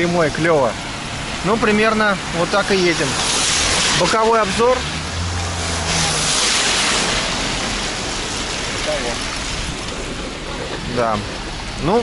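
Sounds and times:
low vehicle hum: 0.0s - 12.0s
tyres hissing on wet road: 0.0s - 12.0s.

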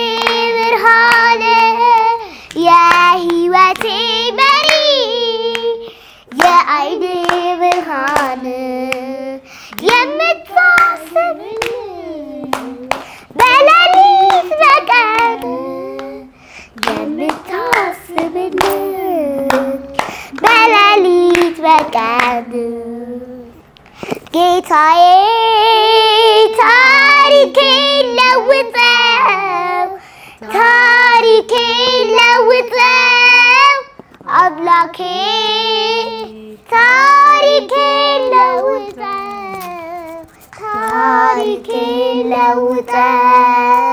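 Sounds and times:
girls singing a devotional song: 0.0s - 43.9s
hand claps: 0.2s - 4.9s, 5.5s - 5.7s, 6.3s - 9.1s, 9.7s - 16.2s, 16.8s - 22.4s
short breaths: 5.8s - 6.3s, 9.4s - 9.8s, 13.0s - 13.3s, 16.3s - 16.8s, 20.0s - 20.4s, 23.8s - 24.3s, 30.0s - 30.4s.

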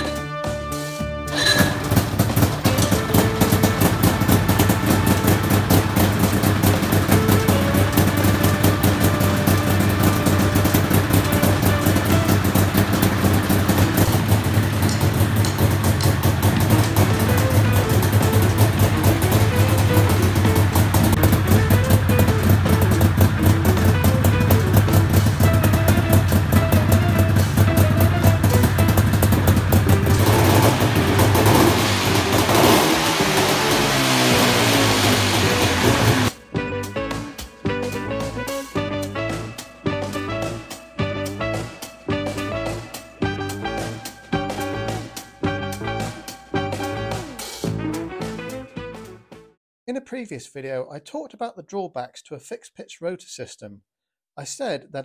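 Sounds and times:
background music: 0.0s - 49.6s
small petrol engine running: 1.3s - 36.4s.

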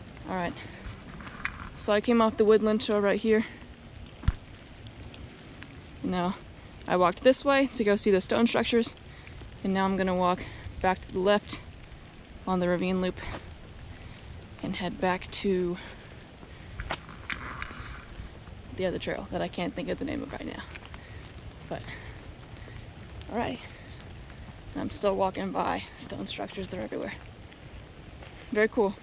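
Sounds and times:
faint outdoor hiss: 0.0s - 29.0s
low wind rumble: 0.0s - 29.0s
footsteps on wet concrete: 12.8s - 15.1s, 15.7s - 19.0s, 26.0s - 29.0s.

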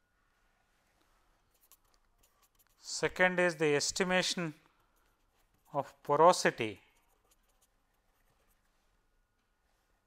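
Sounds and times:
pen scratching on paper: 1.5s - 2.9s, 6.6s - 8.7s.

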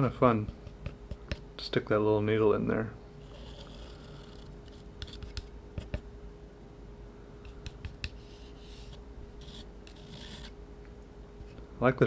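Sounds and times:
faint steady hum: 0.0s - 12.0s
palette knife scraping paint: 3.2s - 6.0s, 7.7s - 10.6s.

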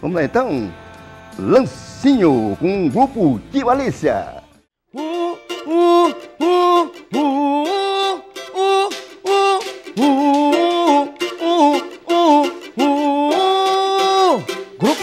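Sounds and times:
man singing wordless syllables: 0.0s - 15.0s
band playing: 5.0s - 15.0s.

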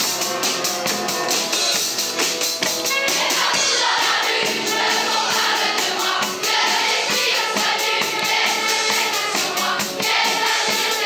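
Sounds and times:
cajon drumming: 0.0s - 11.0s
keyboards: 0.0s - 11.0s
children's choir singing: 2.8s - 11.0s.

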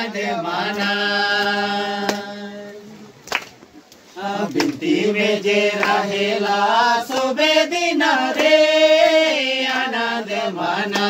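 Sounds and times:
men singing together: 0.0s - 3.0s, 4.2s - 11.0s.

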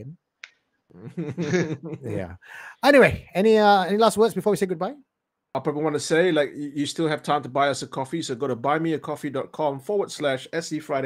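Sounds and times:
men laughing: 1.0s - 2.4s.

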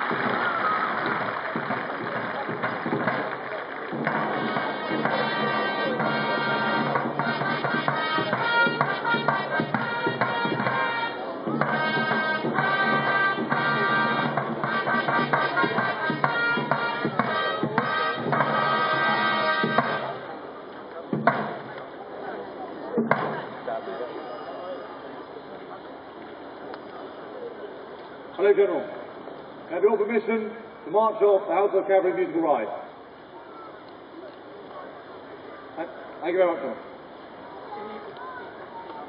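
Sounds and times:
military band music: 0.0s - 21.8s, 23.0s - 24.1s
crowd noise: 0.0s - 39.0s.

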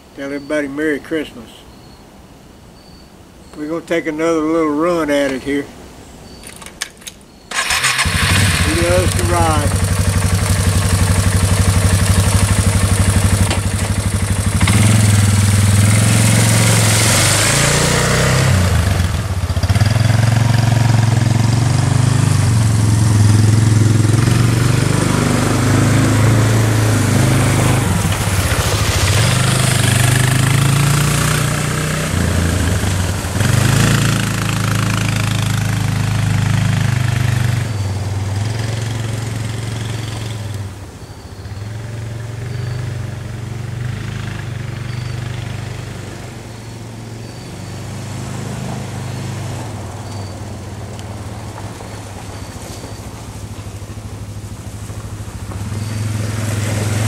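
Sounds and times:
atv engine revving: 7.5s - 57.0s.

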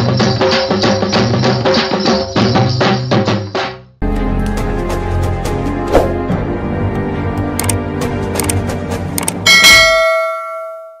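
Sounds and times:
music with a beat: 0.0s - 6.4s
loud metallic bell strike: 9.5s - 11.0s.

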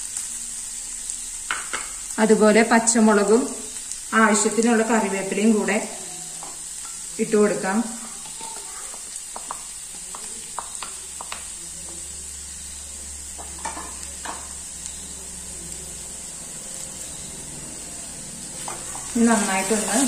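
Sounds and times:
vegetables sizzling in oil: 0.0s - 20.0s
spatula clicking against pan: 8.2s - 11.5s.

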